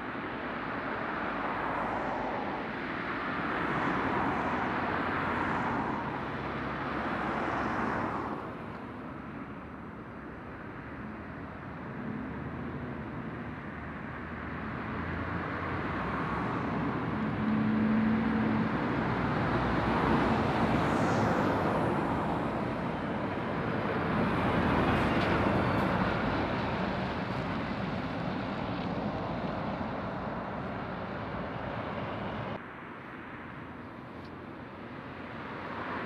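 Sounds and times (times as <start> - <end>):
diesel lorry engines passing: 0.0 - 36.0.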